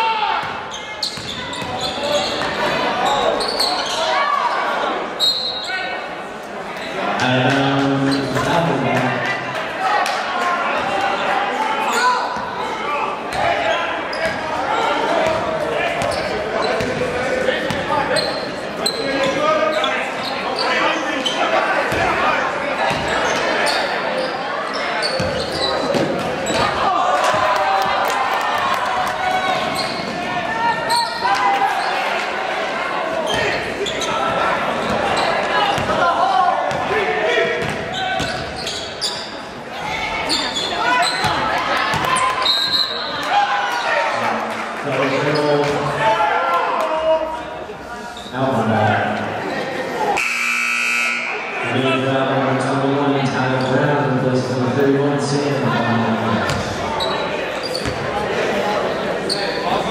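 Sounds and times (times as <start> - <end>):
crowd chatter echoing in hall: 0.0 - 59.9
basketball bouncing on wooden court: 0.4 - 2.5, 15.2 - 16.2, 22.9 - 23.1, 35.7 - 36.0, 36.7 - 36.9, 37.6 - 38.6, 41.2 - 42.2, 56.4 - 56.8, 57.8 - 58.1.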